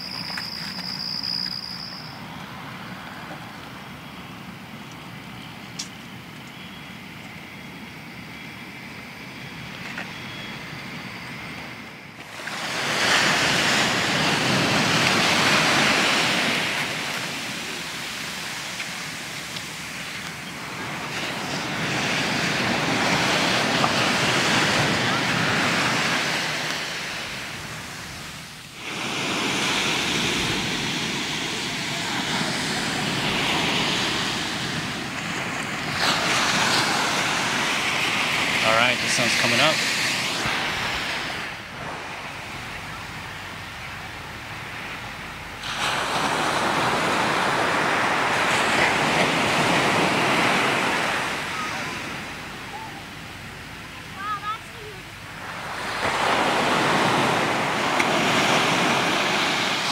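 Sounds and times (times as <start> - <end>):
ocean surf breaking on beach: 10.6 - 59.9.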